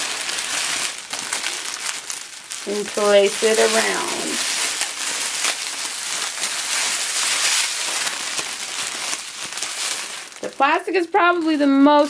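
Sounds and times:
cellophane crinkling: 0.0 - 12.0.

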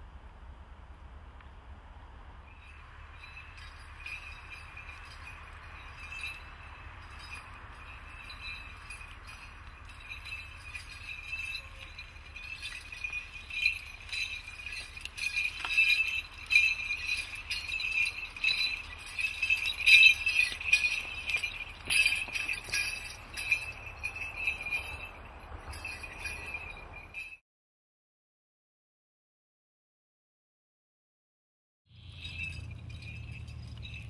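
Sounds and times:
small bells jingling: 2.4 - 27.4, 31.9 - 34.0.

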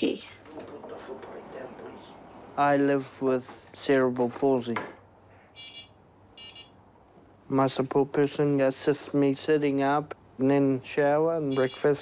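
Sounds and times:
high electronic beeps: 5.6 - 6.7.

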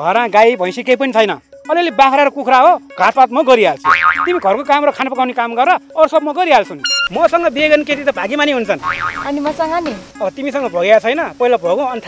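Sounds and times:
man speaking animatedly: 0.0 - 8.9
springy comic sound effect: 6.8 - 7.2, 8.8 - 9.3.

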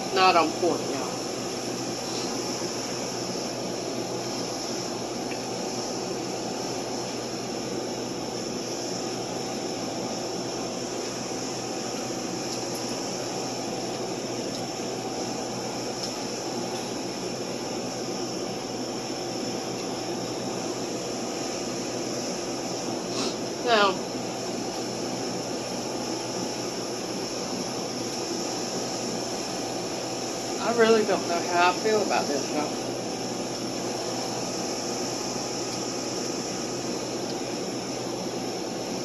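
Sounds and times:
air conditioning fan noise: 0.0 - 39.0.

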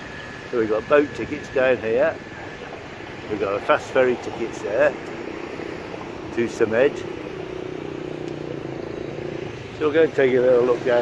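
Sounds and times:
outdoor street noise: 0.0 - 11.0
steady mechanical hum: 0.0 - 11.0.

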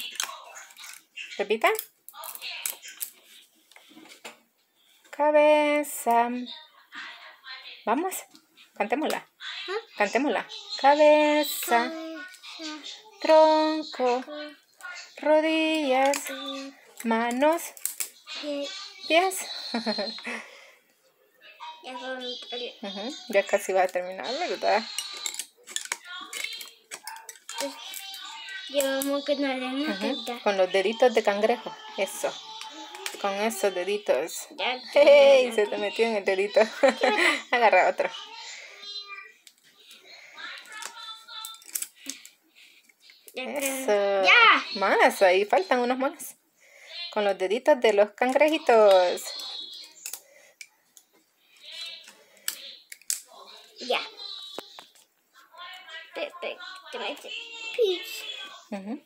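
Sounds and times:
child's voice: 9.4 - 15.2, 16.1 - 16.8, 18.2 - 20.1, 21.4 - 23.5, 24.2 - 42.3, 43.1 - 45.8, 48.5 - 50.2, 53.4 - 58.7
singing with music: 21.4 - 47.5, 51.3 - 58.9
rubber bands clicking and snapping: 52.5 - 53.3.

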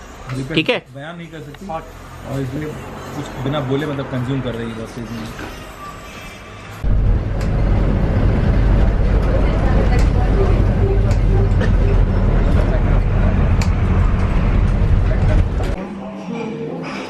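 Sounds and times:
bus engine and road rumble: 0.0 - 15.8.

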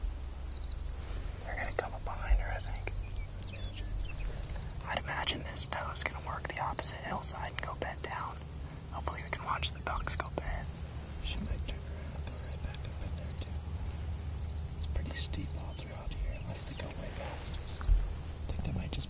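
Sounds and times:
high pulsing chirr: 0.0 - 19.0
steady low rumble: 0.0 - 19.0
man whispering: 1.4 - 13.9, 14.8 - 19.0.

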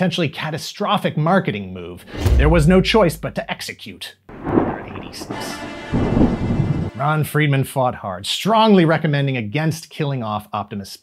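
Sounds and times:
thunder rumbling: 2.1 - 3.5, 4.3 - 7.1.

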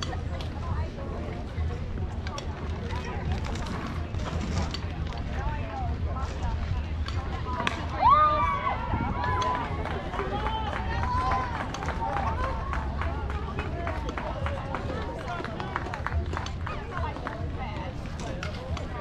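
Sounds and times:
sharp hand claps: 9.2 - 17.4.

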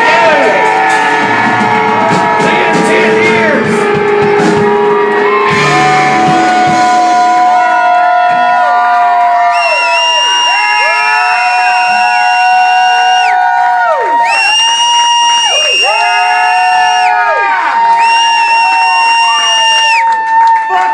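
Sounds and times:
electric guitar feedback: 0.0 - 8.2
crowd cheering: 0.0 - 20.9.

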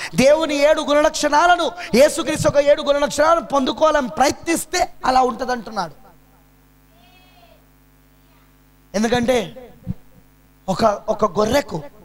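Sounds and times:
low electrical hum: 0.0 - 12.0
faint short pitched call: 6.9 - 8.6.

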